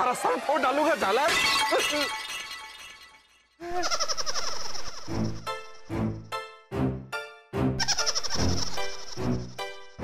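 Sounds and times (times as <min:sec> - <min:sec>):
glass shattering crash: 0:01.0 - 0:03.6.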